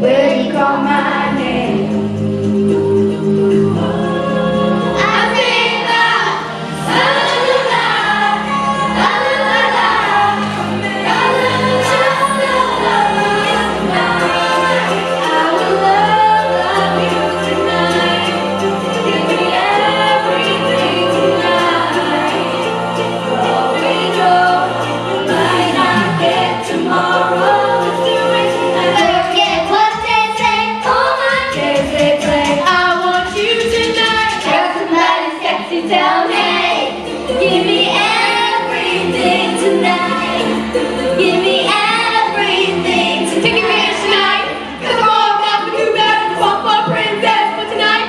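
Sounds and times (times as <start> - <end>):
instrumental accompaniment: 0.0 - 48.0
young voices singing together: 0.0 - 48.0.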